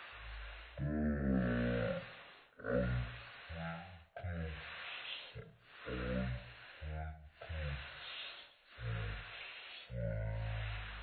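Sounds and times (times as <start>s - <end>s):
steady hiss: 0.0s - 11.0s
person murmuring: 0.8s - 11.0s.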